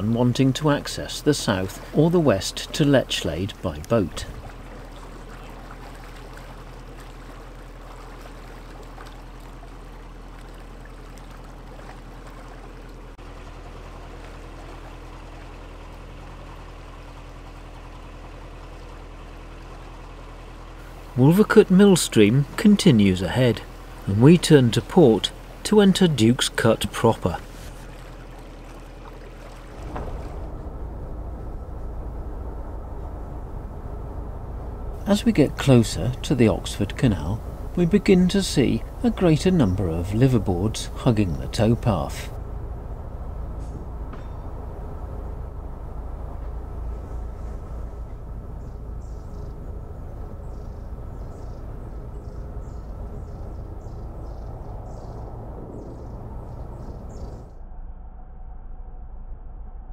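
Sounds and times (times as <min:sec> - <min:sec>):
boat engine humming: 0:00.0 - 0:57.6
low rumble: 0:00.0 - 0:59.9.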